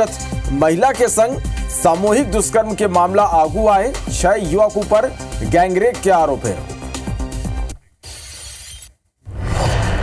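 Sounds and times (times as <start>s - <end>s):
news music bed: 0.0s - 7.8s.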